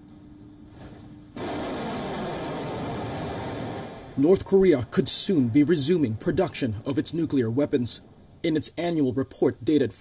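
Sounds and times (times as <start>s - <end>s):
faint steady hum: 0.0s - 10.0s
steady rushing noise: 1.4s - 9.0s.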